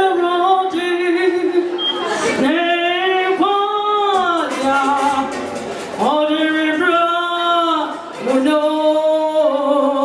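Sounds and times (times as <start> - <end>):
woman singing into microphone: 0.0 - 10.0.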